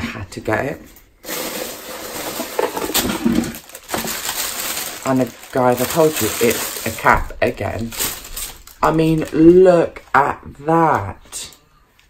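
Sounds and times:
packaging rustling: 0:01.2 - 0:09.8.

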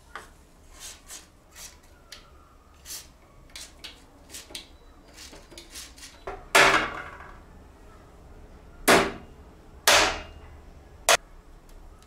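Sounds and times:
hammer striking sheet steel: 0:08.9 - 0:10.4.

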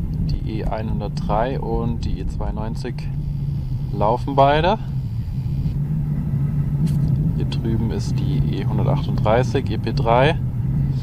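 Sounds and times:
low rumble: 0:00.0 - 0:11.0
steady low hum: 0:00.0 - 0:11.0.

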